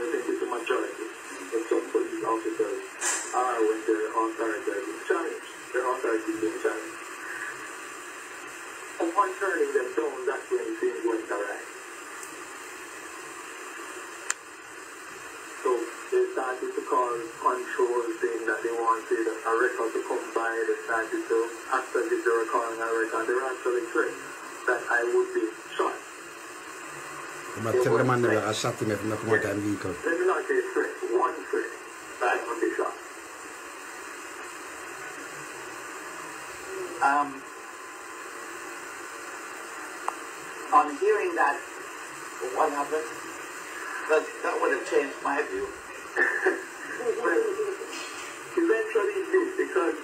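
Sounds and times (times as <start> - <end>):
telephone line hiss: 0.0 - 50.0
man's voice: 27.6 - 30.4.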